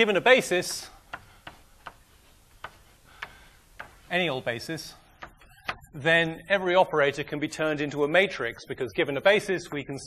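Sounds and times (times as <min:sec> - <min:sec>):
chalk tapping on blackboard: 0:00.6 - 0:04.2, 0:05.2 - 0:05.8.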